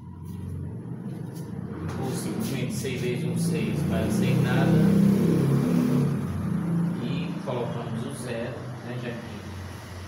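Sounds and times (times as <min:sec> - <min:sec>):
low vehicle engine rumble: 0:00.0 - 0:05.0.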